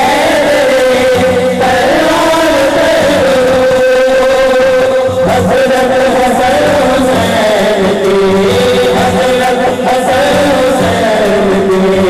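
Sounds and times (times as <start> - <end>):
men chanting a long sung note: 0.0 - 12.0.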